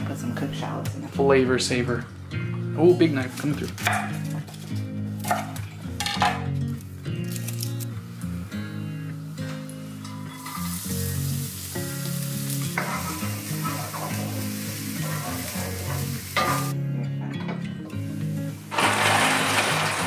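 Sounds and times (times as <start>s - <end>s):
shallots sizzling in hot oil: 7.3s - 16.8s, 18.2s - 20.0s.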